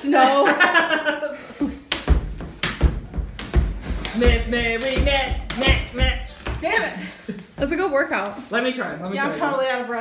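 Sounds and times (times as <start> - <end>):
jump rope slapping wooden floor: 1.8 - 6.8
thuds of feet landing: 1.8 - 6.9, 7.6 - 8.0.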